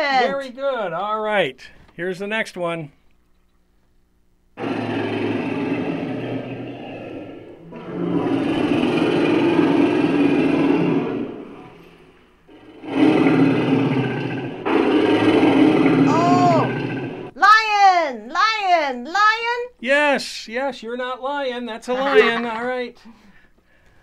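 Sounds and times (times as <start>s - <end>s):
lion roaring: 4.6s - 17.3s.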